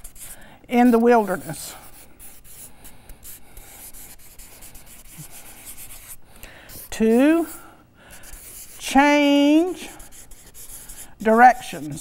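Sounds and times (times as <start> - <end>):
marker pen scratching on paper: 0.0 - 12.0.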